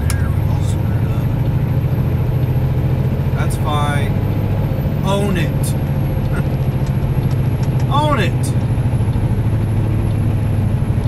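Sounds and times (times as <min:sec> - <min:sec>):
truck diesel engine drone: 0:00.0 - 0:11.0.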